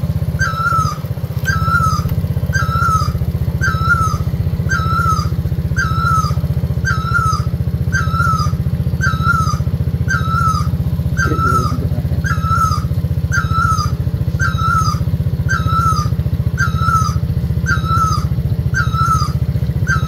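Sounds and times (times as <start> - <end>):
small motorcycle engine: 0.0 - 20.0
high call with falling tail: 0.3 - 20.0.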